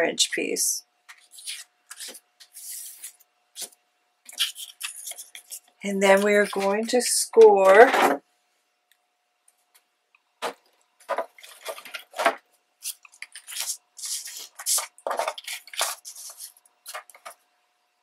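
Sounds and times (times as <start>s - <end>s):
paper rustling: 1.1s - 8.1s, 10.4s - 17.4s.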